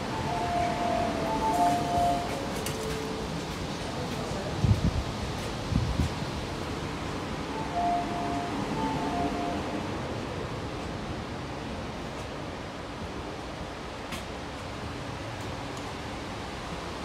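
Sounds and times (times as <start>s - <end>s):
metro carriage background noise: 0.0s - 17.0s
two-note electronic chime: 7.5s - 9.8s.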